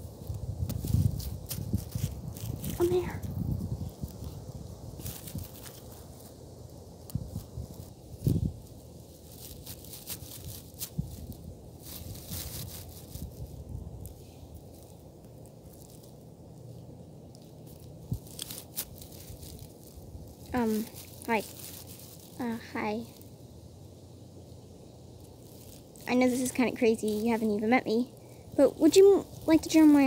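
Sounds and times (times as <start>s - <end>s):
grass rustling and crackling: 0.0s - 30.0s.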